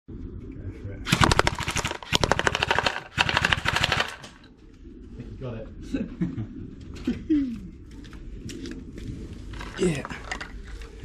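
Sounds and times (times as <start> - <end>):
airsoft gun automatic fire: 1.1 - 4.4.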